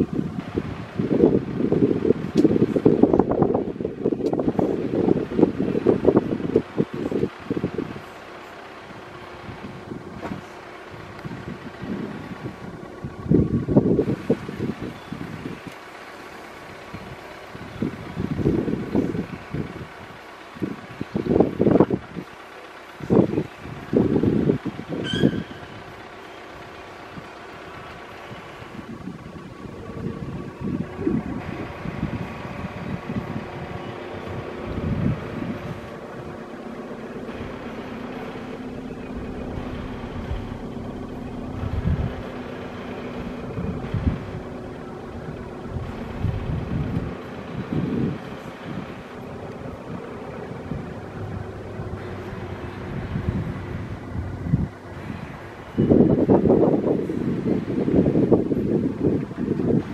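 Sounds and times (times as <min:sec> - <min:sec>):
wind buffeting microphone: 0:00.0 - 0:15.7, 0:16.6 - 0:59.9
city traffic hum: 0:00.0 - 0:59.9.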